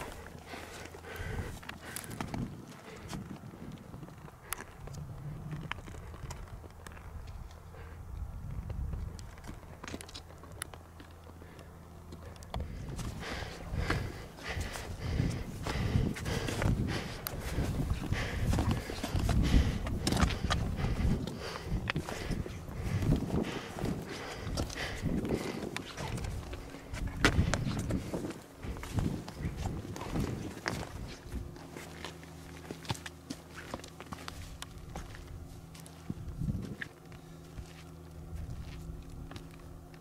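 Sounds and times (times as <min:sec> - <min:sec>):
crampon footsteps on rock and snow: 0:00.0 - 0:07.5, 0:08.7 - 0:40.0.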